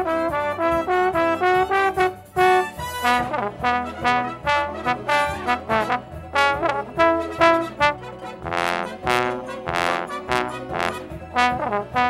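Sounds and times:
slide trombone playing: 0:00.0 - 0:12.0.

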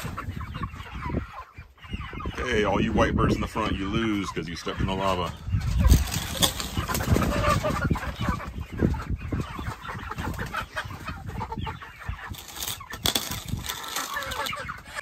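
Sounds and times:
young chickens clucking: 0:00.0 - 0:15.0.

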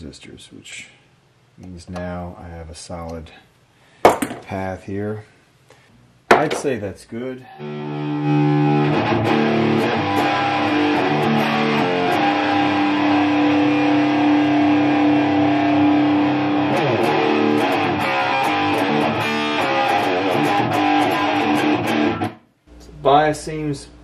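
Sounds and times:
electric guitar chords: 0:07.5 - 0:22.4.

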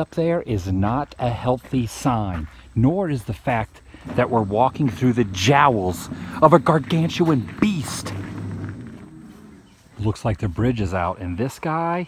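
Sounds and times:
dinosaur roar growl: 0:04.0 - 0:10.0.

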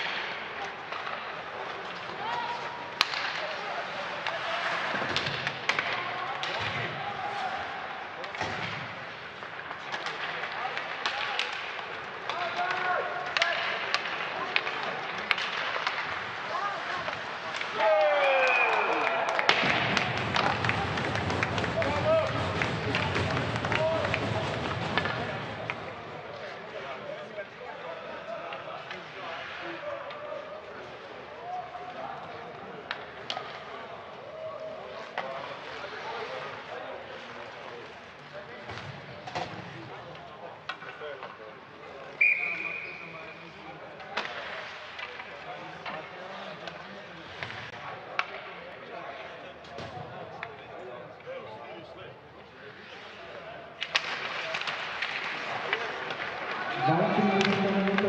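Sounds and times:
hockey sticks and puck knocking: 0:00.0 - 0:07.0, 0:08.2 - 0:18.3, 0:19.4 - 0:26.5, 0:40.6 - 0:41.6, 0:44.0 - 0:48.6, 0:53.8 - 0:58.0
crowd shouting and cheering: 0:16.4 - 0:26.0, 0:56.0 - 0:58.0
referee's whistle blast: 0:42.2 - 0:43.0.

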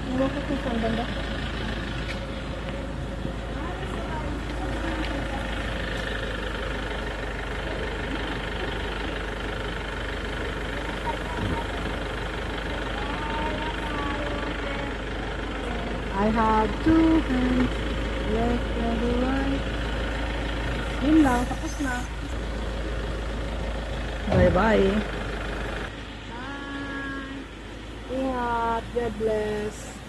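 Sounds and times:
vehicle engine idling: 0:00.0 - 0:30.0.

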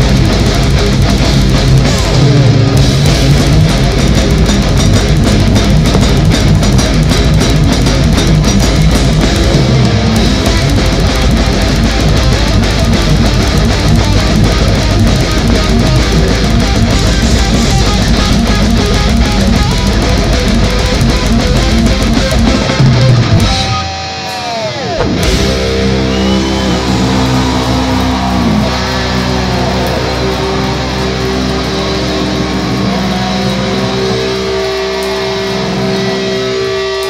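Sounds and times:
bass guitar: 0:00.0 - 0:37.0
distorted electric guitars: 0:00.0 - 0:37.0
drums playing fast: 0:00.0 - 0:37.0.

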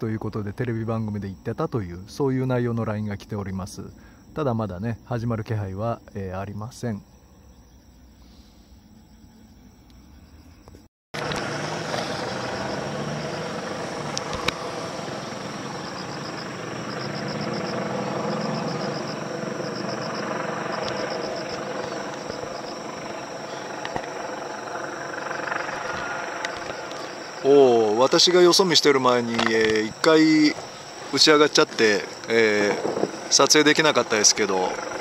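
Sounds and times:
crickets chirping: 0:00.0 - 0:35.0
helicopter overhead: 0:11.2 - 0:35.0.

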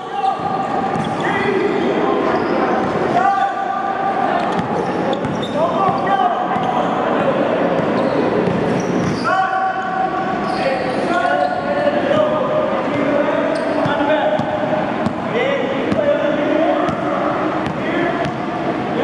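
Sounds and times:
basketballs bouncing on gym floor: 0:00.3 - 0:01.2, 0:04.4 - 0:06.9, 0:07.7 - 0:09.2, 0:12.1 - 0:15.3, 0:16.8 - 0:18.5.

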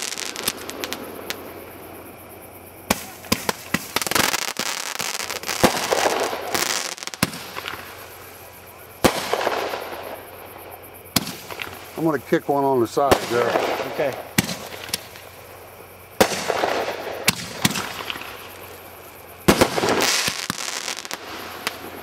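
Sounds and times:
fireworks popping: 0:00.0 - 0:01.8, 0:02.8 - 0:10.5, 0:11.1 - 0:22.0
firework bursts: 0:00.0 - 0:22.0
firework hiss: 0:00.0 - 0:22.0.

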